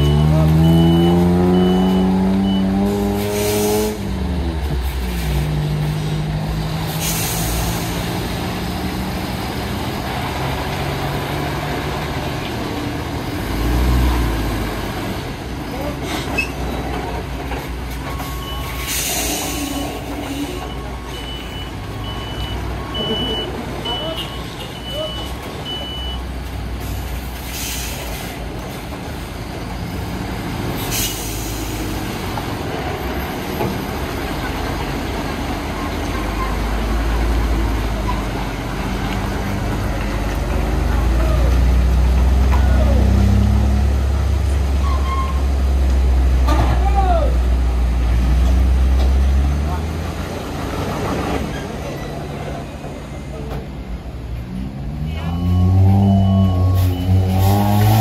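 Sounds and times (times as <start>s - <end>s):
reversing alarm beeping: 0.0s - 2.9s, 20.5s - 26.3s, 55.1s - 58.0s
truck diesel engine revving: 0.0s - 16.1s, 29.8s - 46.5s, 54.5s - 58.0s.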